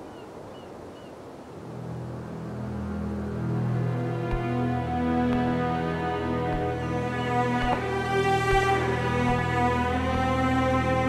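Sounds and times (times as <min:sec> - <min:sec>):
low sustained music tone: 0:01.6 - 0:11.0.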